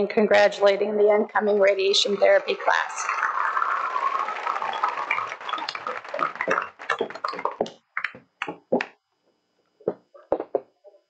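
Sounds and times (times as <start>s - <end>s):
audience applauding: 1.6s - 8.9s.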